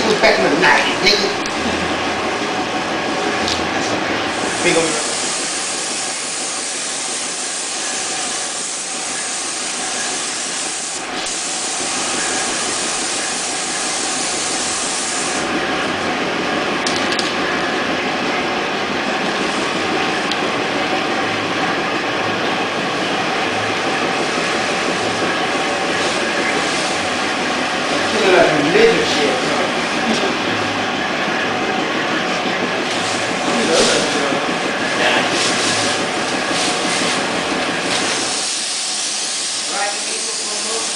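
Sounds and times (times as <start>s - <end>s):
low machine and air noise: 0.0s - 40.9s
spray gun air hiss: 4.3s - 15.6s, 23.5s - 28.3s, 32.9s - 40.9s.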